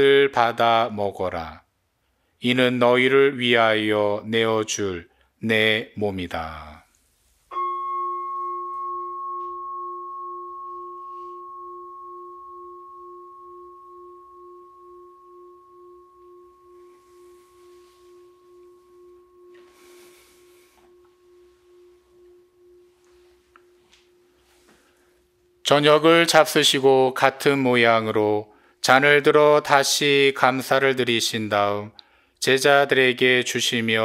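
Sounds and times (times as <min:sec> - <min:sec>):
bowl-shaped bell ringing: 0:07.5 - 0:27.3.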